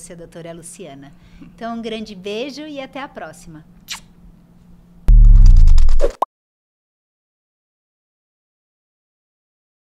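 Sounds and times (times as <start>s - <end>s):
deep falling boom: 5.1s - 6.0s.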